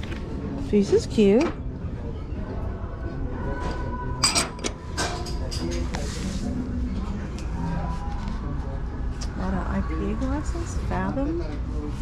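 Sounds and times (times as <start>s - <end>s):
glass cups clinking: 4.2s - 5.7s.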